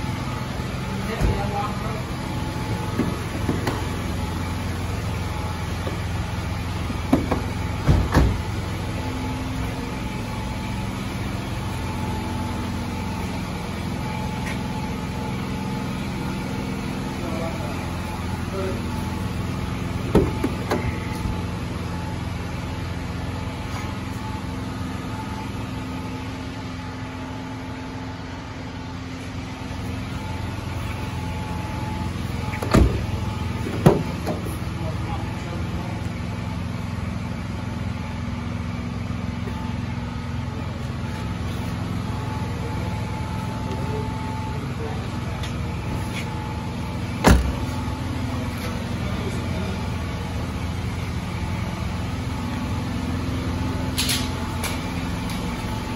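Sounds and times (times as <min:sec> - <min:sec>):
car engine idling: 0:00.0 - 0:55.9.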